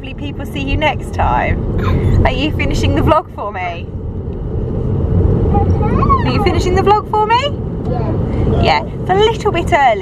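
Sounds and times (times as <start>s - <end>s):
car cabin rumble: 0.0s - 10.0s
child's voice: 5.5s - 6.4s.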